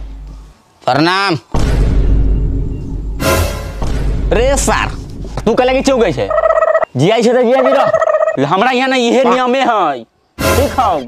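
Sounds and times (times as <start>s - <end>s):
person calling loudly: 6.2s - 8.5s.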